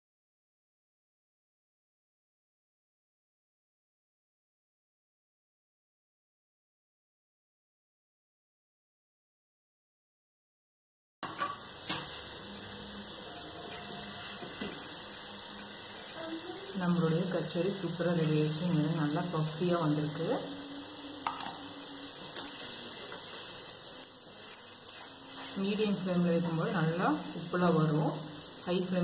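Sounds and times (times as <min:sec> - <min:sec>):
deep-frying in hot oil: 0:11.2 - 0:29.0.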